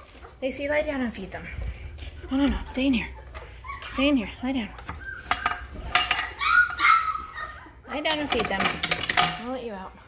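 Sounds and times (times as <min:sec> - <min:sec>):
puppies whining and yipping: 0:00.0 - 0:08.6.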